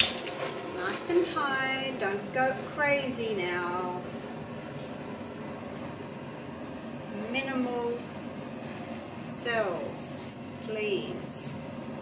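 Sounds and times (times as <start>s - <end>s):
butane torch flame hissing: 0.0s - 12.0s.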